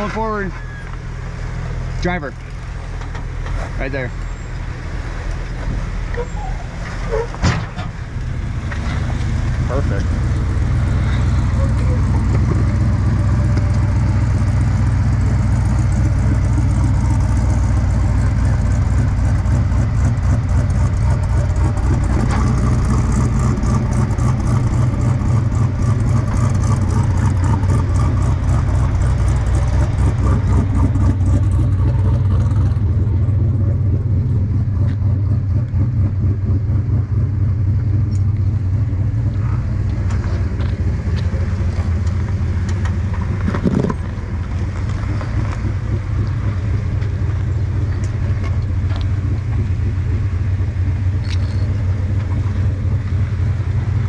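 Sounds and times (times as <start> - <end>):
engine rumbling at crawling speed: 0.0 - 54.0.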